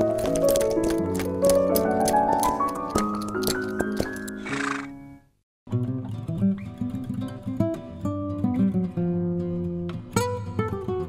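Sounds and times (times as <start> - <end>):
breathy horse sound: 4.1 - 5.0.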